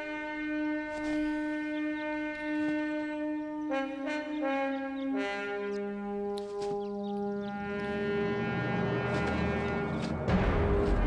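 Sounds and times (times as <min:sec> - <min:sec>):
orchestral low brass chord: 0:00.0 - 0:11.0.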